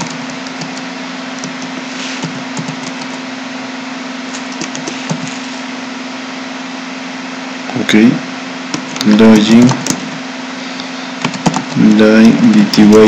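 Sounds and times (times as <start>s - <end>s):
computer keyboard keys clicking: 0.0s - 0.8s, 2.6s - 3.2s, 4.5s - 5.2s, 11.2s - 11.7s.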